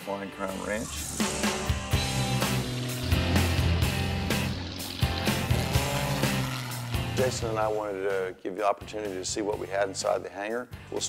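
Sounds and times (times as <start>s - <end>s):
sustained bass notes: 0.5s - 8.3s.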